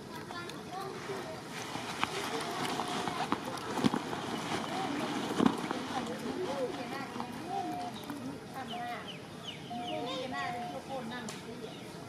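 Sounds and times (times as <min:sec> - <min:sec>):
indistinct background voices: 0:00.0 - 0:12.0
steady outdoor noise: 0:00.0 - 0:12.0.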